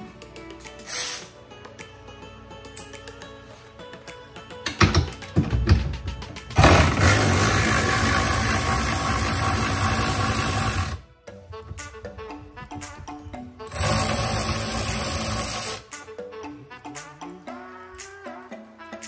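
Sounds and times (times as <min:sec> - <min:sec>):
background music: 0:00.0 - 0:19.0
cordless power ratchet spinning: 0:06.6 - 0:11.0, 0:13.7 - 0:15.9.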